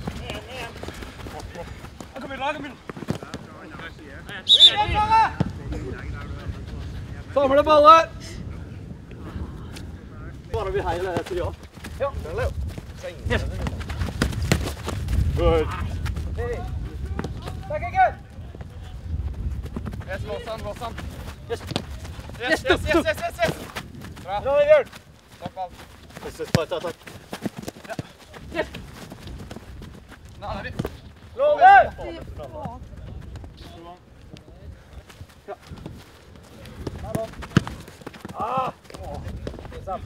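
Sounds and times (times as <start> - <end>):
thuds of feet and ball: 0.0 - 4.4, 10.9 - 17.8, 19.3 - 22.4, 23.2 - 24.3, 24.9 - 31.2, 35.1 - 40.0
players running on grass: 0.0 - 40.0
players shouting: 4.3 - 5.6
loud kick of ball: 13.6 - 15.0.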